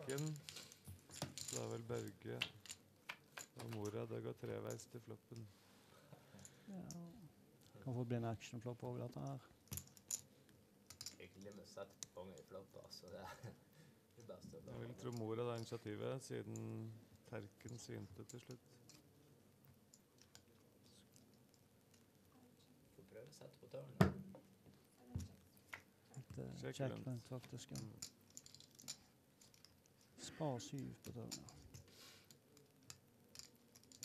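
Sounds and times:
poker chips clicking: 27.0s - 30.0s, 31.0s - 34.0s.

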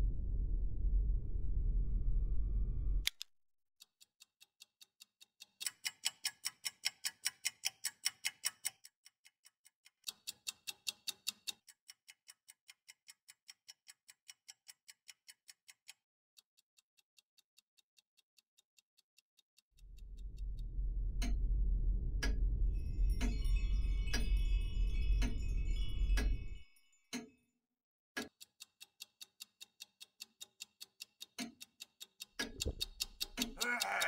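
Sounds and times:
alarm clock ticking: 4.7s - 9.0s, 10.0s - 16.0s, 22.2s - 27.3s, 28.2s - 34.0s.

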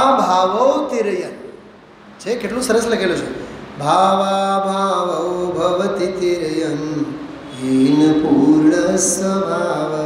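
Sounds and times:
man chanting: 0.0s - 1.5s, 2.3s - 10.0s.

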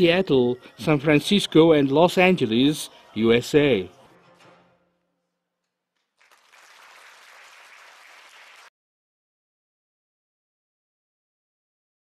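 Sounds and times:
audience applauding: 6.0s - 8.7s.

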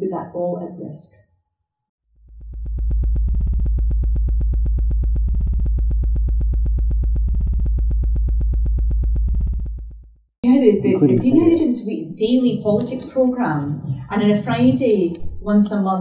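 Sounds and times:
pulsing synthesizer drone: 2.2s - 10.2s.

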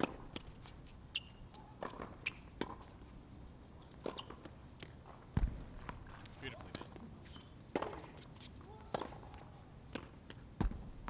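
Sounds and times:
racket hitting tennis ball: 0.0s - 0.8s, 1.5s - 3.1s, 3.9s - 10.8s
tennis ball thud: 7.7s - 8.2s.

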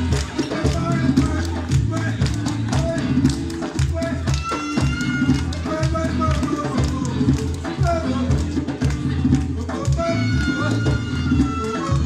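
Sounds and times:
hand percussion steady beat: 0.0s - 12.0s.

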